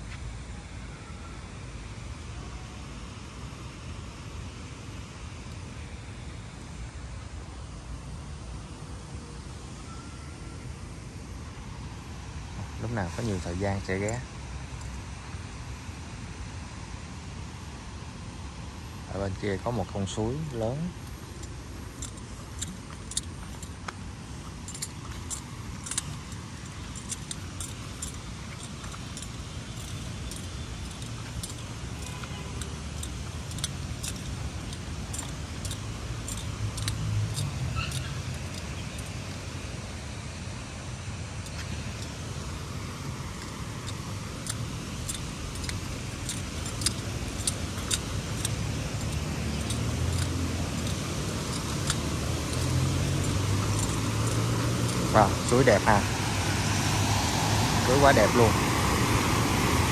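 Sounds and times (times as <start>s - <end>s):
mountain stream rushing: 11.6s - 59.9s
light clicks: 20.4s - 39.4s, 43.3s - 56.1s.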